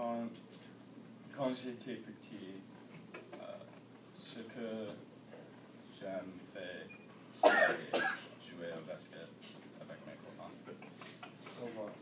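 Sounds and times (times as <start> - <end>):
person coughing: 7.4 - 8.3.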